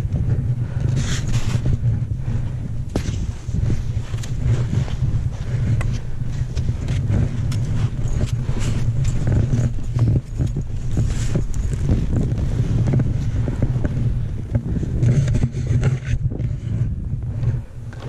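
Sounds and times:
wind rumble on microphone: 0.0 - 18.0
skis scraping through snow: 0.3 - 18.0.

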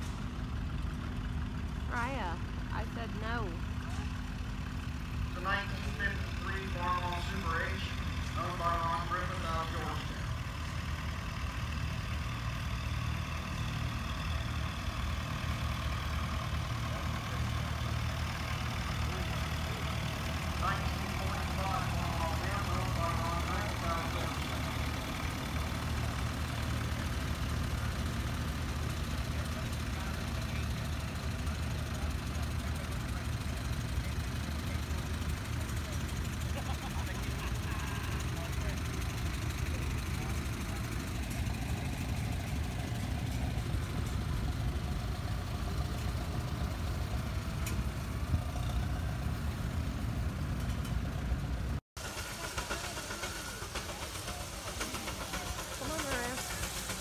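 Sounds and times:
old car engine chugging past: 0.0 - 57.0
tractor engine idling: 0.0 - 57.0.

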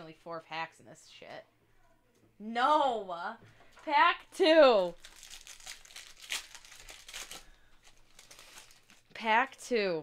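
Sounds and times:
foil wrapper crinkling: 4.9 - 9.1
foil wrapper tearing: 5.0 - 9.0.

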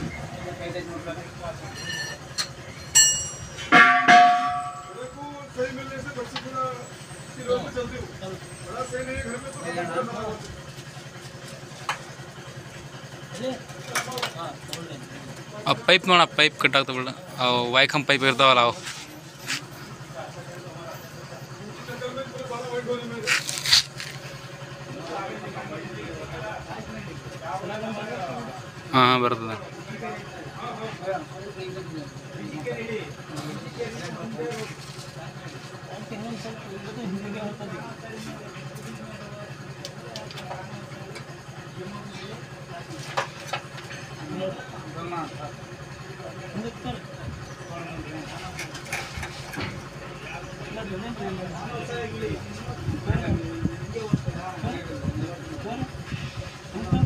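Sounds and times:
engine idling: 0.0 - 57.0.

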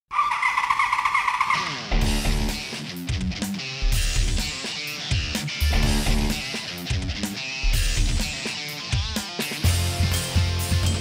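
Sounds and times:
motorcycle engine at high revs: 0.1 - 2.6.

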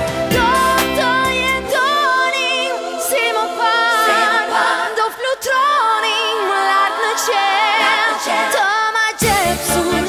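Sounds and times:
woman singing a ballad: 0.2 - 3.4, 5.0 - 10.0.

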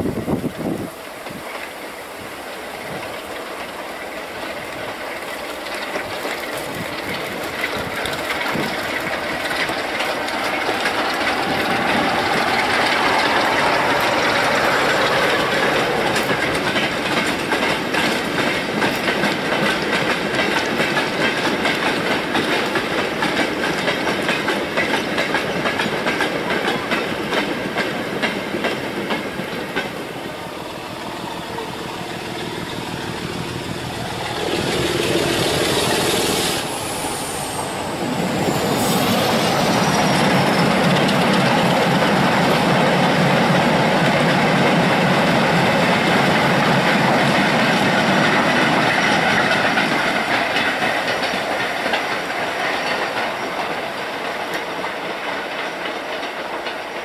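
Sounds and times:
diesel locomotive engine approaching: 0.0 - 57.0
diesel locomotive passing: 0.0 - 57.0.

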